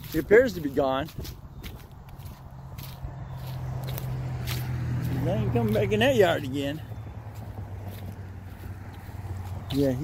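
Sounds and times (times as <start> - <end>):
footsteps through dry leaves: 0.0 - 10.0.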